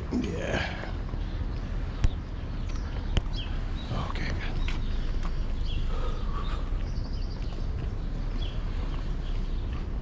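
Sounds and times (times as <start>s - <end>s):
city street rumble: 0.0s - 10.0s.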